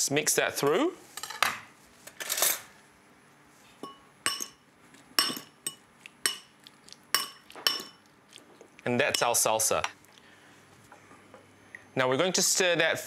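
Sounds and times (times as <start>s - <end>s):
spoon clinking against glass bowl: 3.8s - 4.6s, 5.2s - 6.5s, 7.1s - 8.1s, 9.0s - 9.9s.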